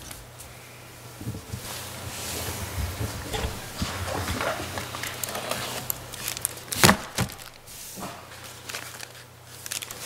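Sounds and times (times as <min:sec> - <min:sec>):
paper handling: 0:03.4 - 0:10.0.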